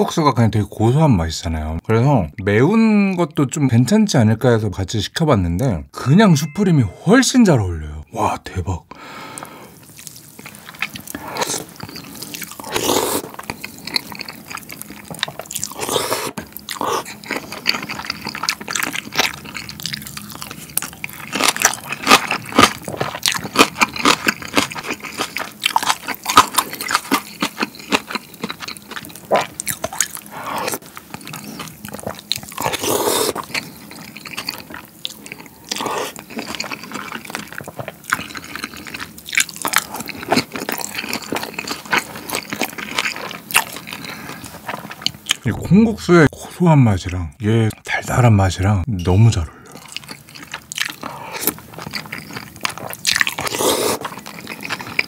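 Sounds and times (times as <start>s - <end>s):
noodles slurping: 9.4s - 45.4s, 49.7s - 55.0s
chewing with wet mouth clicks: 9.4s - 45.5s, 49.7s - 55.0s.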